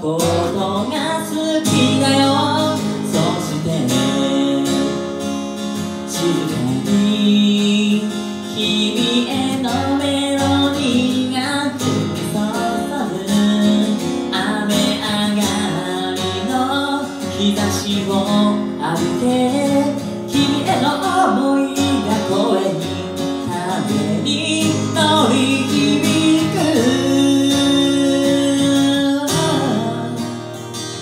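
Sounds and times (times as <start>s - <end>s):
acoustic guitar strumming: 0.0s - 31.0s
man singing: 0.0s - 31.0s.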